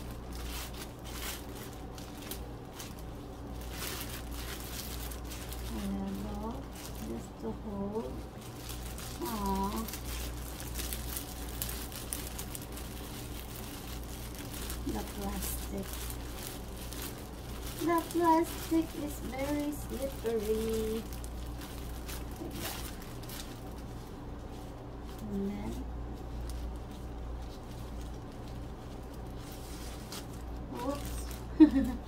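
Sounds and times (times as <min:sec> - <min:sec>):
plastic wrap crinkling: 0:00.0 - 0:32.0
person speaking indistinctly: 0:05.6 - 0:08.5, 0:09.1 - 0:10.3, 0:14.7 - 0:16.2, 0:17.6 - 0:21.2, 0:25.2 - 0:26.0, 0:30.6 - 0:31.5.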